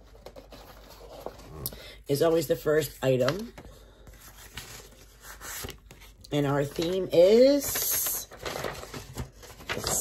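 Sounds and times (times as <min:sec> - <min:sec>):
paper rustling: 0:00.0 - 0:02.4, 0:03.0 - 0:10.0.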